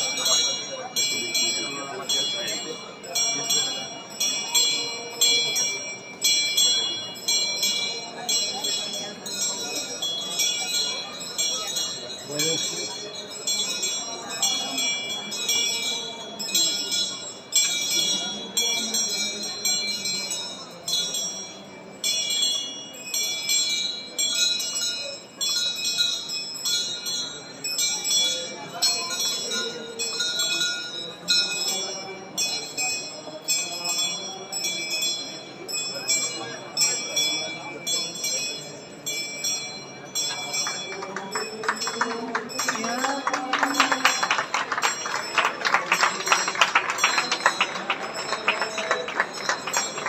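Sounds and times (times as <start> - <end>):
murmuring crowd: 0.0 - 50.0
small high-pitched bell ringing: 0.0 - 50.0.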